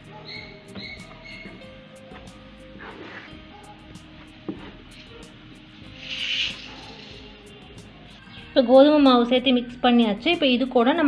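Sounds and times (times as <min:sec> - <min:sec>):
faint background music: 0:00.0 - 0:11.0
rustling hiss: 0:04.9 - 0:07.9.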